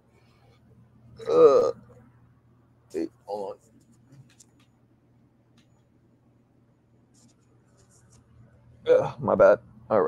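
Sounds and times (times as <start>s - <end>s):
faint scratchy rustles: 7.1s - 8.4s.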